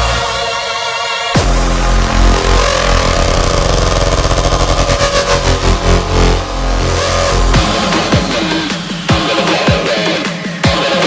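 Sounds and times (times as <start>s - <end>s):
distorted synth lead: 1.4s - 9.6s
heavy bass: 1.4s - 11.0s.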